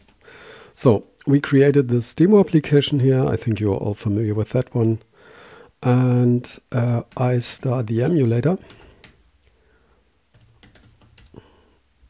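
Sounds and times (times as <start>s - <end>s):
faint keyboard typing: 0.0s - 0.2s, 6.8s - 9.6s, 10.3s - 11.6s.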